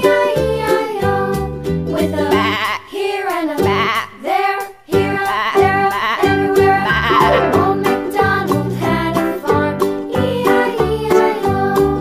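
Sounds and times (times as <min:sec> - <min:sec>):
background music: 0:06.7 - 0:09.8
sheep bleating: 0:06.9 - 0:07.8.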